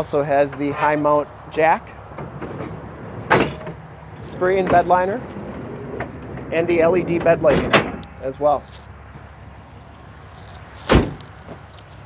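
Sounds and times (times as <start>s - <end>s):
low steady rumble: 0.2s - 10.6s.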